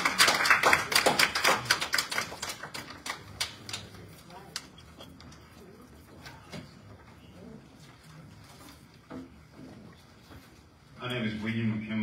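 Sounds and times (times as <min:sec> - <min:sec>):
audience applause: 0:00.0 - 0:03.9.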